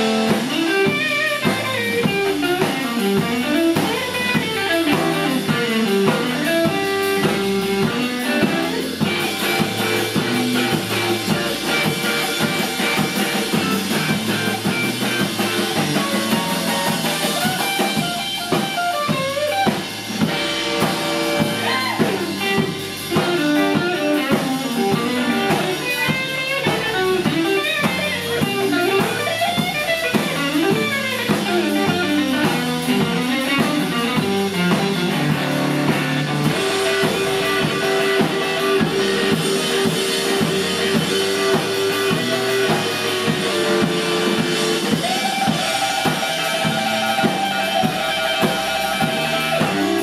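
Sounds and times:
bass guitar: 0.0s - 50.0s
drum kit: 0.0s - 50.0s
electric guitar solo: 0.0s - 50.0s.

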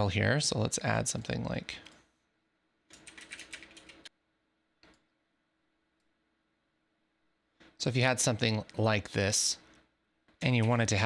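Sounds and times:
computer keyboard typing: 2.9s - 4.1s.

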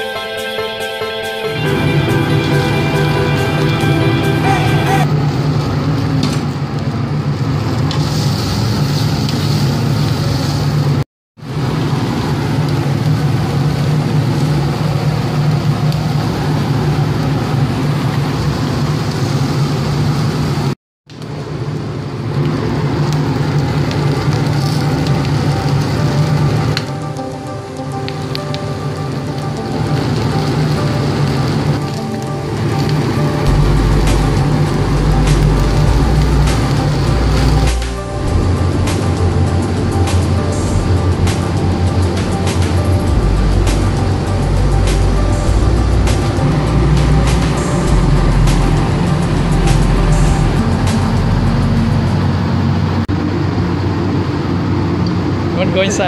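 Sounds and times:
food sizzling on a griddle: 7.9s - 10.9s
steady low roar: 33.2s - 55.5s.

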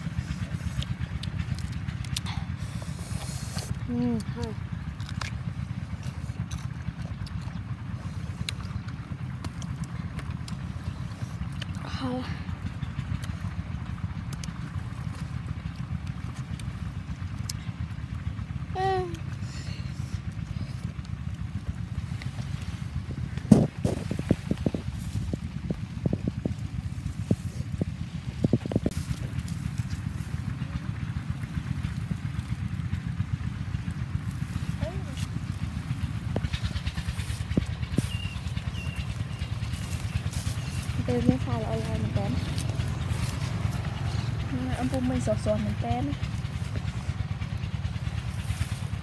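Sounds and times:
steady low rumble: 0.0s - 49.0s
leaves rustling: 19.4s - 49.0s.

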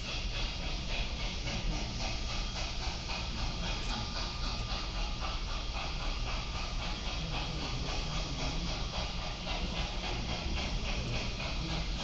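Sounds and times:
steam locomotive chuffing: 0.0s - 12.0s.

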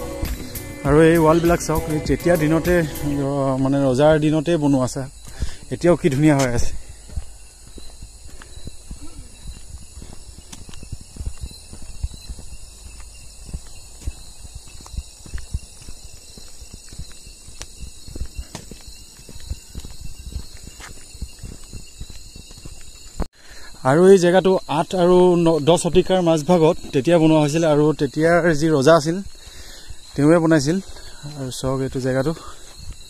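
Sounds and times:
footsteps on brick path: 0.0s - 23.4s, 25.5s - 33.0s
high insect drone: 0.0s - 33.0s
steady high-pitched hiss: 0.0s - 33.0s.

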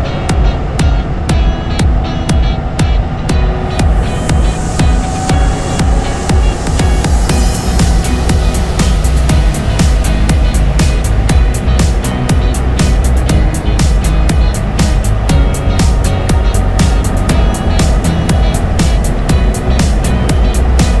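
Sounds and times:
music with beat and heavy bass: 0.0s - 21.0s.

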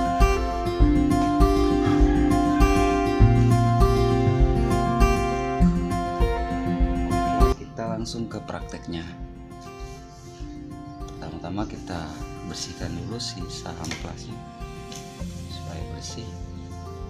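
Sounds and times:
acoustic guitar music with beat: 0.0s - 17.0s.

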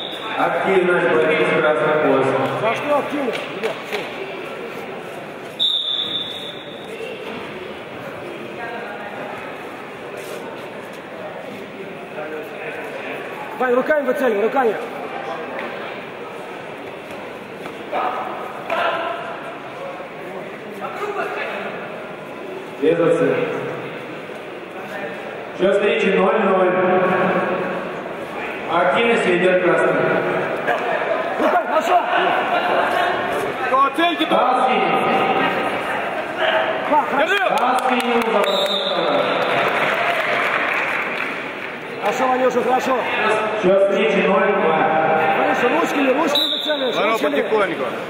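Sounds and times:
murmur of voices: 0.0s - 48.0s
audience applauding: 37.3s - 41.8s.

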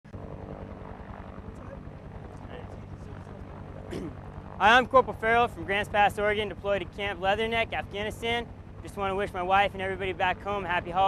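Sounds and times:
helicopter engine hum: 0.1s - 11.0s.

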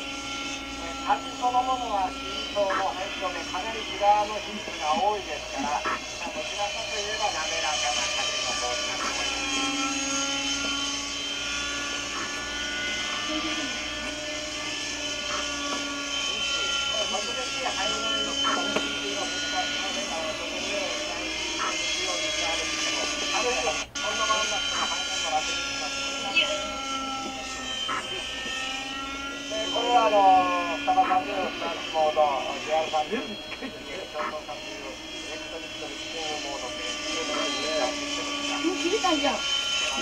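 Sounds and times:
model helicopter engine whine: 0.0s - 40.0s.

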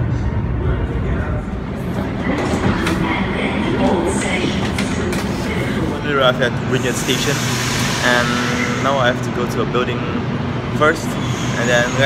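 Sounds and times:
train rumble: 0.0s - 12.0s
voices: 0.6s - 7.4s.

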